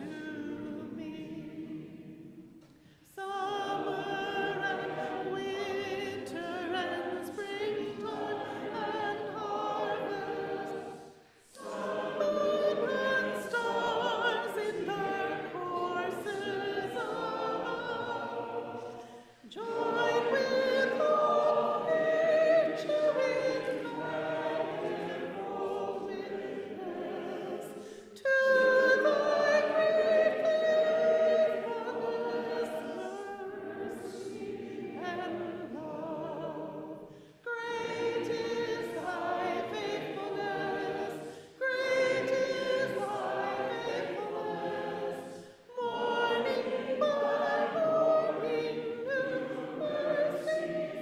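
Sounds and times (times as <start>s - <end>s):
congregation singing a hymn: 0.0s - 51.0s.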